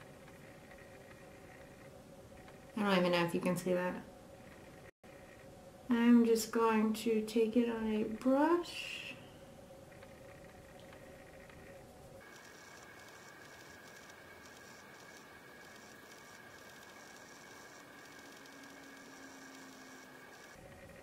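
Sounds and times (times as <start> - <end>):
high-pitched whine: 7.8 - 21.0.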